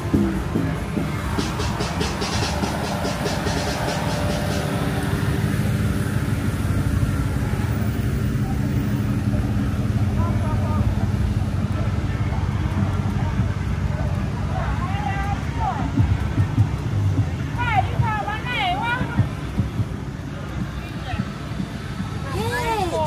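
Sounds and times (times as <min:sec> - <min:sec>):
cars rolling past: 0:00.0 - 0:23.0
faint voices: 0:00.0 - 0:23.0.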